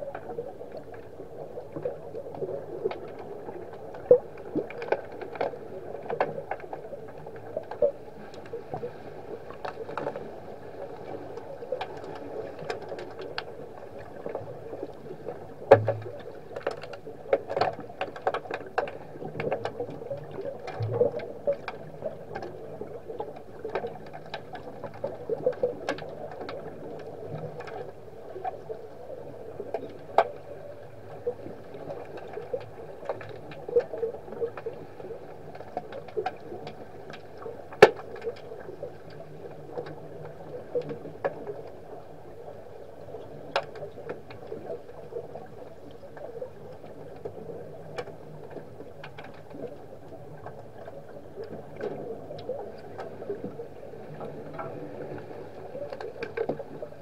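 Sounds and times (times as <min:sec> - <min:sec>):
muffled underwater wash: 0:00.0 - 0:57.0
sharp clicks and knocks underwater: 0:00.0 - 0:57.0.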